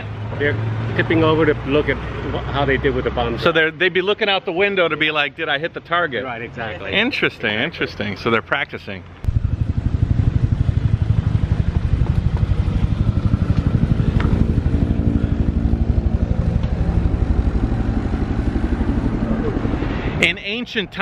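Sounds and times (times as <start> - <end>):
small engine running: 9.3 - 20.2.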